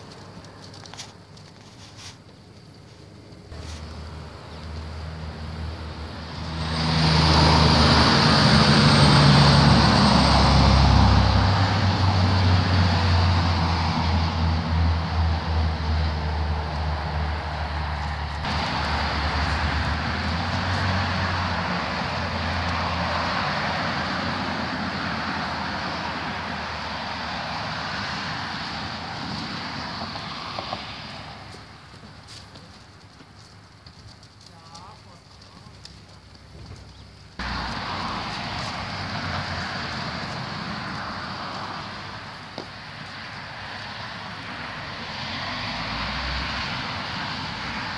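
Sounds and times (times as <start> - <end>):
road noise: 0.0 - 47.9
vehicle engine hum: 3.2 - 47.9.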